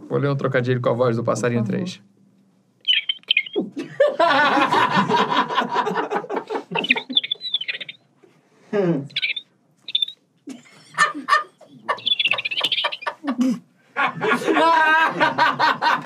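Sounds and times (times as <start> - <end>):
man imitating bird chirps: 2.9 - 3.8, 6.7 - 8.0, 9.1 - 10.2, 11.9 - 13.2.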